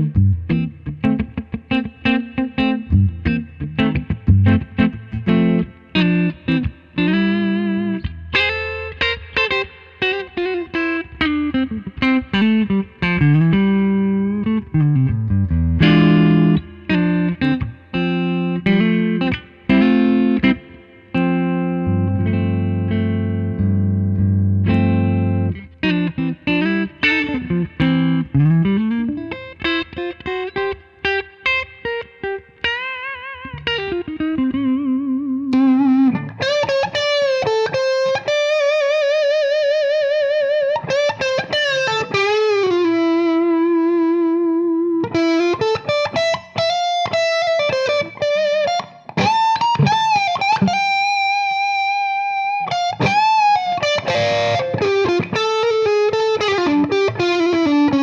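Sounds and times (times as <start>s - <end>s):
electric guitar through amplifier: 0.0s - 58.0s.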